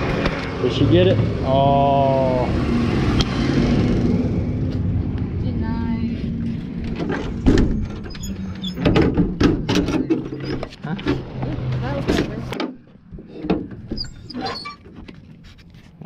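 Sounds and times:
steady engine hum: 0:00.0 - 0:08.6.

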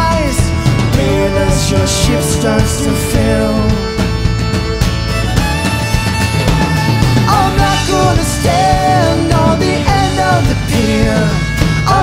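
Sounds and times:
rock band playing live: 0:00.0 - 0:12.0
wavering melody line: 0:00.7 - 0:12.0.

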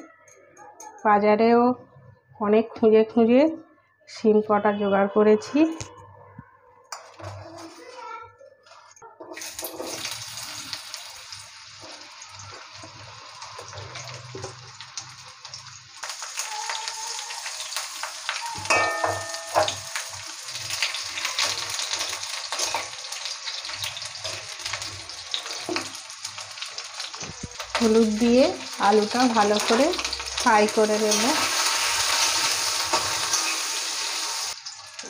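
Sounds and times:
metal spatula scraping a wok: 0:09.4 - 0:10.5
potato wedges sizzling in oil: 0:09.4 - 0:35.0.

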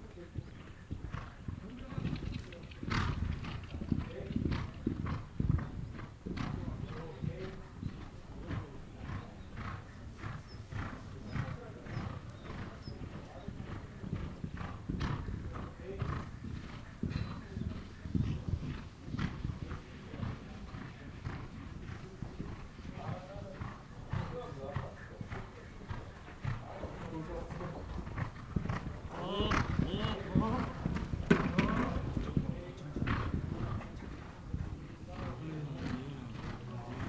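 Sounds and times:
horse hoofbeats on sand: 0:00.0 - 0:37.0.

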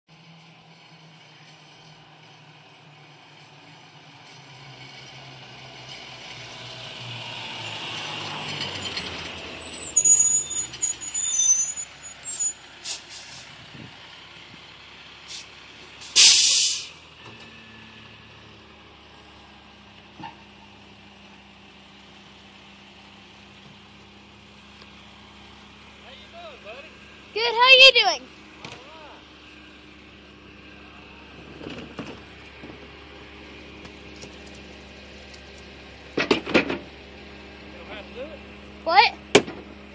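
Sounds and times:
garbage truck diesel engine: 0:00.1 - 0:39.9
squeals and clanks: 0:08.2 - 0:12.6
air brake hiss: 0:12.8 - 0:13.5, 0:15.3 - 0:17.0.

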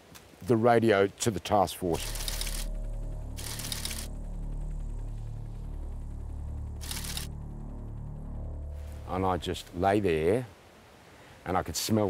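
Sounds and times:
low background music drone: 0:01.6 - 0:10.6.

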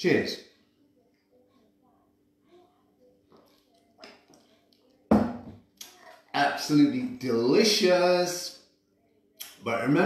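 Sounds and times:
bottle knocking on wooden table: 0:05.1 - 0:05.6.

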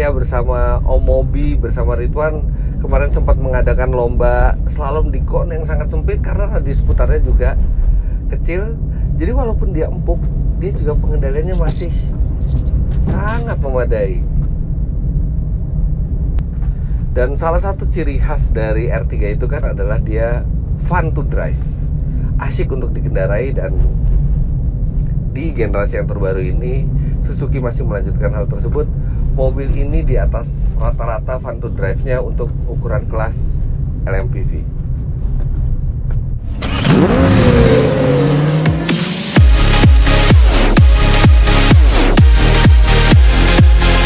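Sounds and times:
car engine and road noise: 0:00.0 - 0:44.0
rushing sweeping sound effect: 0:36.4 - 0:44.0.

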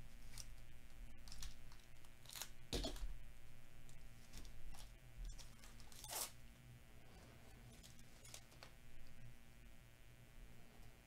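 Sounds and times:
handling of card pack: 0:00.2 - 0:03.1
plastic wrapper ripped open: 0:01.2 - 0:03.0.

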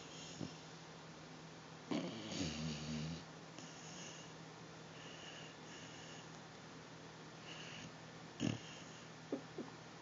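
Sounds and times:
dog snoring: 0:01.9 - 0:04.3, 0:04.9 - 0:06.3, 0:07.4 - 0:09.1.

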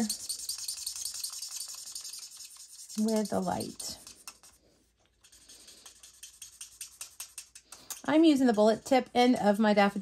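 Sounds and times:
marker scratching on card: 0:00.0 - 0:07.6.

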